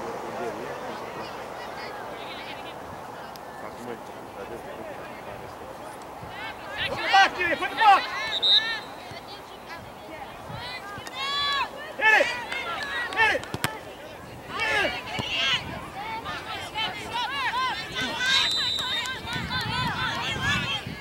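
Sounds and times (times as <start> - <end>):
distant shouts and calls: 5.3 - 21.0.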